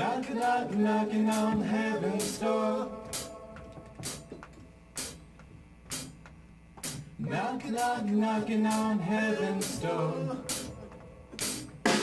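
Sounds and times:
drum kit slow beat with cymbal: 0.0 - 12.0.

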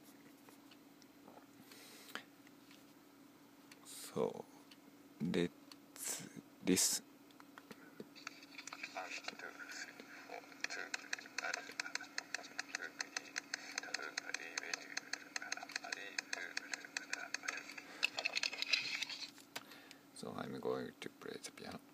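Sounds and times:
steady low hum: 0.0 - 21.9
rapid even tapping: 7.4 - 19.1.

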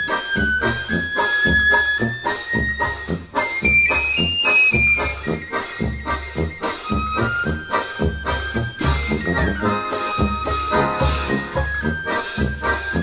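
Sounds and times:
flute melody: 0.0 - 13.0
steady bass beat: 6.9 - 13.0.

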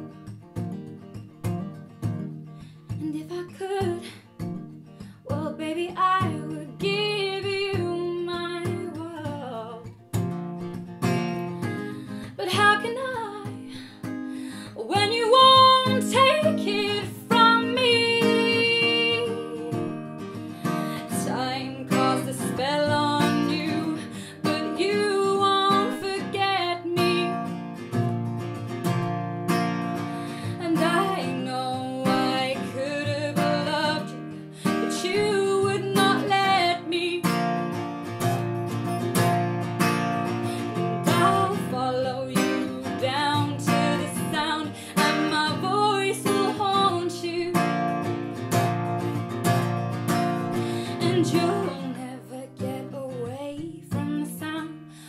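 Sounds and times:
woman singing: 2.9 - 10.0, 11.7 - 27.6, 30.0 - 37.8, 40.3 - 48.4, 50.4 - 55.0
acoustic guitar strummed: 6.1 - 54.5.

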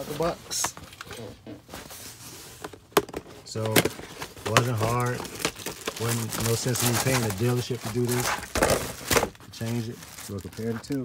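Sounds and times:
handling of a cardboard box: 0.0 - 11.0.

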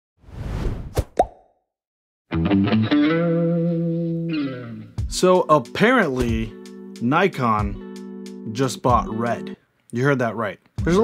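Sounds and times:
distorted guitar: 2.3 - 5.2.

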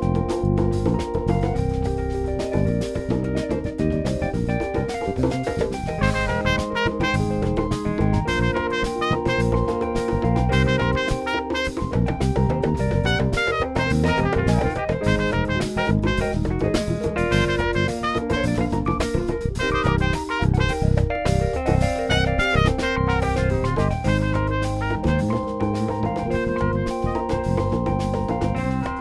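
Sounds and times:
driving drum kit: 0.0 - 29.0
live band playing: 0.0 - 29.0
trumpet: 5.9 - 27.8.

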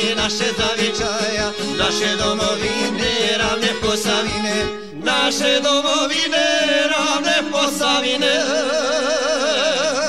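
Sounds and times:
men singing folk chant: 0.0 - 10.0
violin with vibrato: 0.0 - 10.0.

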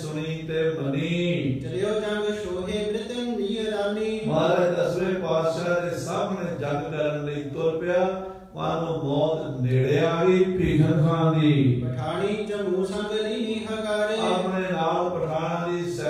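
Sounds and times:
man chanting melodically: 0.0 - 16.0.

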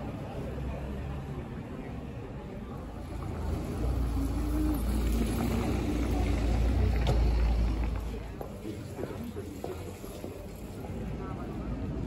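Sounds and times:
faint voices: 0.0 - 12.0
low street rumble: 0.0 - 12.0.

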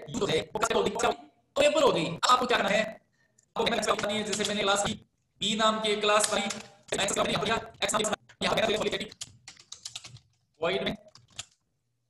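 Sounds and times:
person speaking: 0.0 - 11.4
keyboard typing: 3.8 - 4.8, 6.1 - 11.6.

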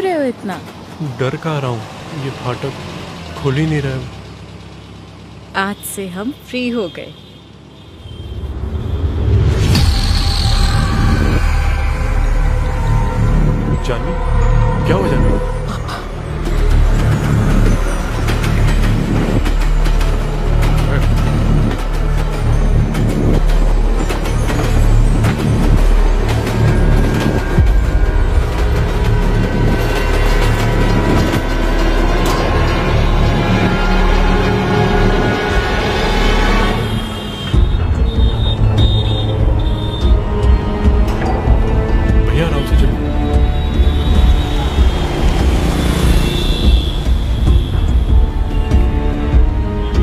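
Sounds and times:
tense film score: 0.0 - 50.0
train running past: 0.0 - 50.0.

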